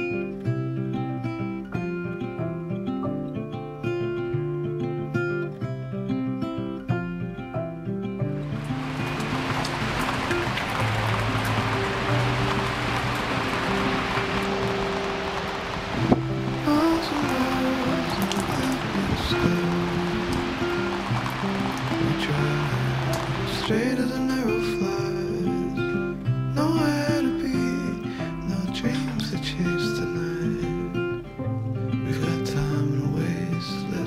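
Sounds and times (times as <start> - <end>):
acoustic guitar music: 0.0 - 34.0
rain falling on concrete: 8.4 - 31.1.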